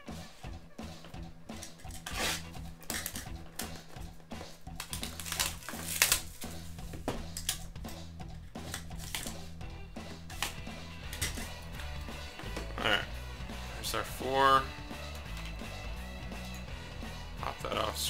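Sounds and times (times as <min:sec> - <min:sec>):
background music with bass line: 0:00.0 - 0:18.0
shrink-wrap crackling: 0:04.8 - 0:06.6.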